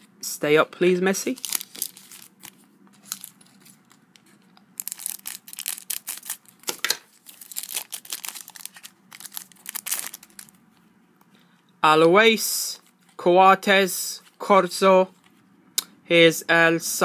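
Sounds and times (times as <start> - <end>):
foil wrapper crinkling and tearing: 1.3 - 4.0, 4.8 - 10.6.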